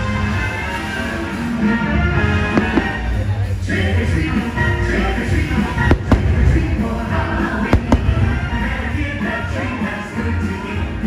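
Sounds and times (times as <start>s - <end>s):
music soundtrack: 0.0s - 11.0s
fireworks bangs: 2.3s - 3.5s, 5.4s - 9.1s.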